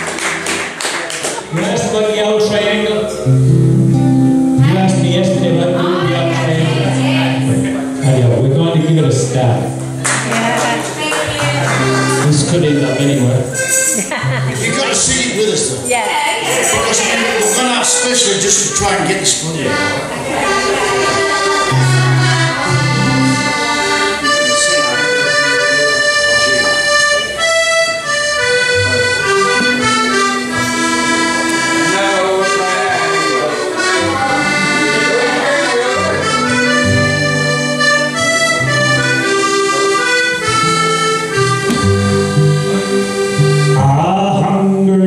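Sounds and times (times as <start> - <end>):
accordion melody: 0.0 - 45.0
acoustic guitar: 0.0 - 45.0
folk band playing instrumental: 0.0 - 45.0.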